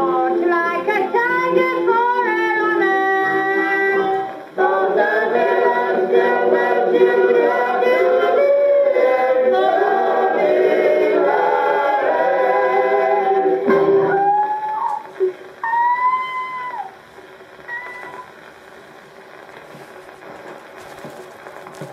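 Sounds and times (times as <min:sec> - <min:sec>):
gramophone song with singing: 0:00.0 - 0:17.0
record surface hiss: 0:00.0 - 0:21.9.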